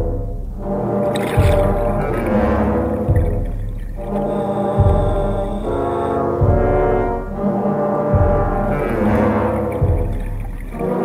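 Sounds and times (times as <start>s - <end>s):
sustained brass-like chords: 0.0s - 11.0s
low drum hit: 1.2s - 5.7s, 8.1s - 11.0s.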